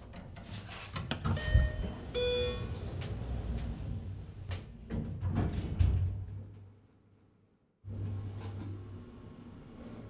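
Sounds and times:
elevator doors sliding closed: 0.4s - 6.4s.

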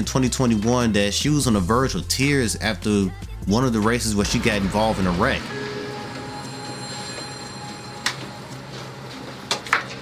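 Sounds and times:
ventilation hum with whining tones: 4.2s - 10.0s.

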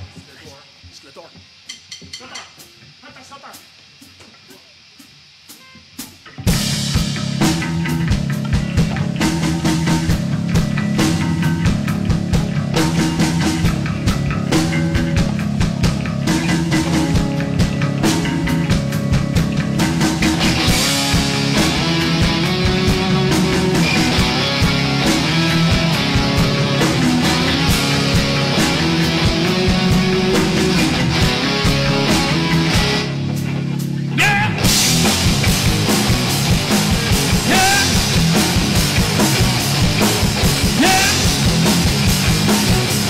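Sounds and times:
rock band playing: 4.8s - 43.0s.

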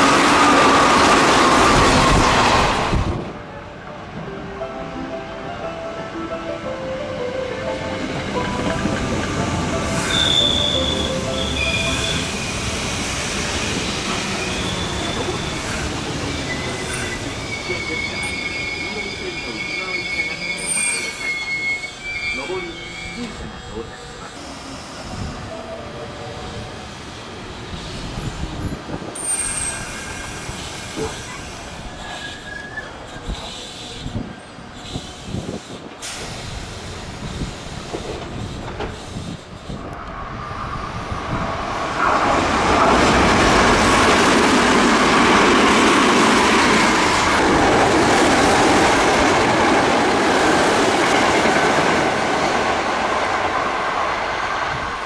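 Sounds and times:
rail noise: 0.0s - 55.0s
brief rail squeals: 9.8s - 12.8s, 13.8s - 25.8s, 29.2s - 36.8s
train wheels rumbling: 26.5s - 55.0s.

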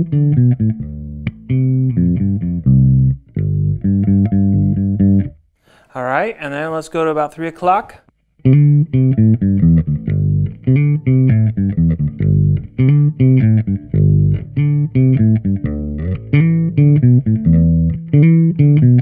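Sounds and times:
electric bass riff: 0.0s - 5.5s, 8.4s - 19.0s.

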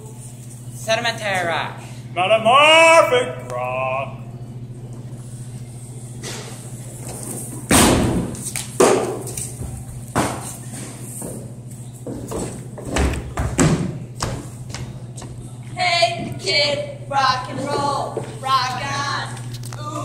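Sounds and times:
steady low hum: 0.0s - 20.0s
thumps and knocks on wooden stage: 12.1s - 14.8s.

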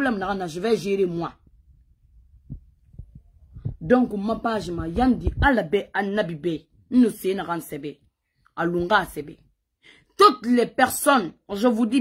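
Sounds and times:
woman talking: 0.0s - 1.5s, 3.6s - 9.5s, 10.2s - 12.0s.

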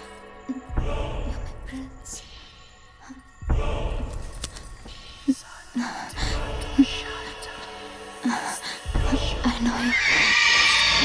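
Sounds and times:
high pitched cry: 9.9s - 11.0s.

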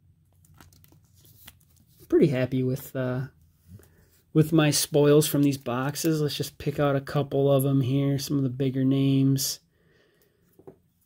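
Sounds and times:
trading cards handling: 0.3s - 2.1s.

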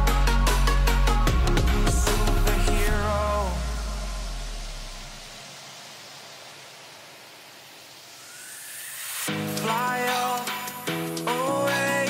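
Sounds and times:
steady hiss: 2.2s - 12.0s.

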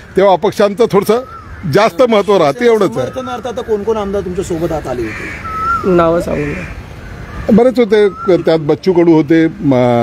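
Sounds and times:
crow cawing: 0.0s - 8.3s.

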